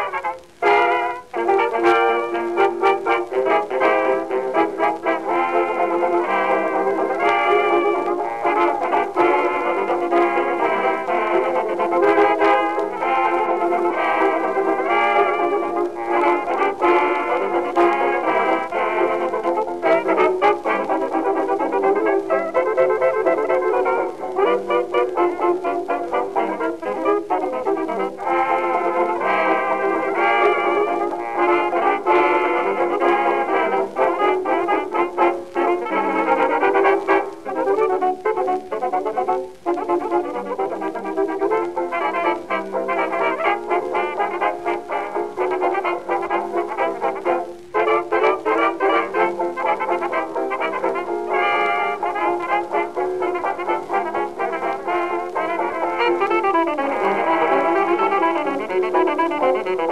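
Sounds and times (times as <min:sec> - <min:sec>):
jazz dance band record: 0:00.0 - 0:59.9.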